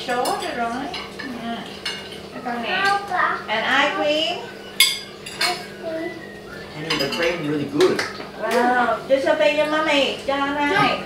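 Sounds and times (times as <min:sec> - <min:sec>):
cutlery clinking on plates: 0:00.1 - 0:03.0, 0:04.8 - 0:05.7, 0:06.8 - 0:08.7.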